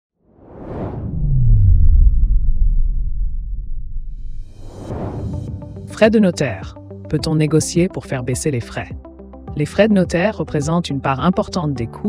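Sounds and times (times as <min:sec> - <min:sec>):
whoosh: 0:00.2 - 0:05.9
deep rumble with sliding low tone: 0:00.8 - 0:05.9.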